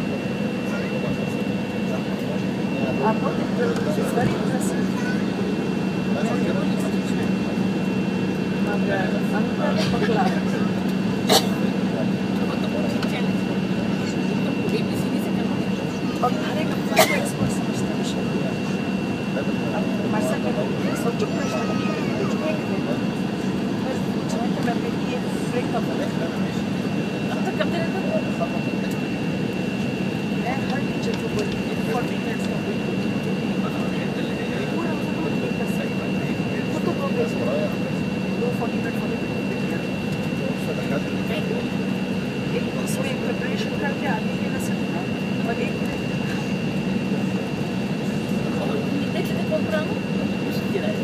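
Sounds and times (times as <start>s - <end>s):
aircraft cabin hum: 0.0s - 51.0s
high-pitched engine whine: 0.0s - 51.0s.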